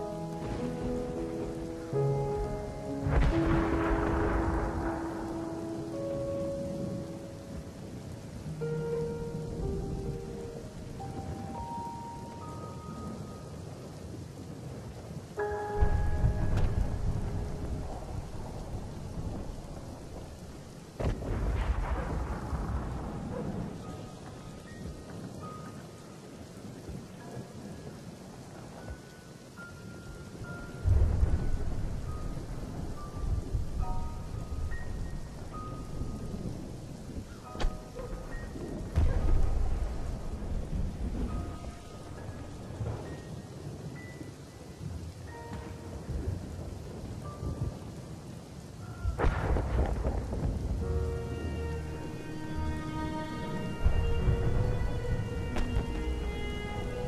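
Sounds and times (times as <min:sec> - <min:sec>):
sparse soft melody: 0:00.0 - 0:48.6, 0:49.4 - 0:57.0
rain-like hiss: 0:00.0 - 0:57.0
deep rumbling booms: 0:38.7 - 0:43.0, 0:49.1 - 0:51.0.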